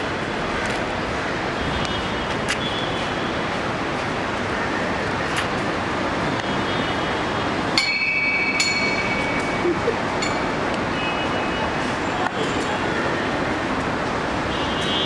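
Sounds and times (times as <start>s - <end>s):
busy entrance background noise: 0.0s - 15.0s.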